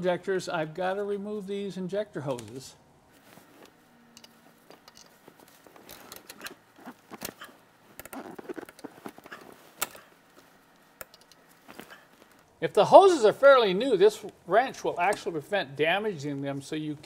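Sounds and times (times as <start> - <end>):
clicks and rubbing of hoses: 3.2 - 12.6.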